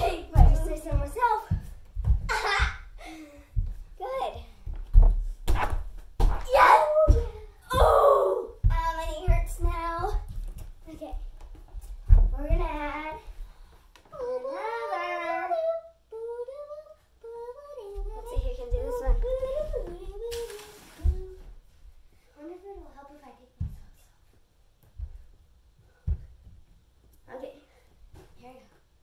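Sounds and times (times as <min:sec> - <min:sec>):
girl singing: 0:00.0 - 0:01.8, 0:06.5 - 0:10.4, 0:12.2 - 0:13.4, 0:14.1 - 0:21.6
feet thudding on a tumbling mat: 0:00.0 - 0:02.9, 0:03.5 - 0:13.4.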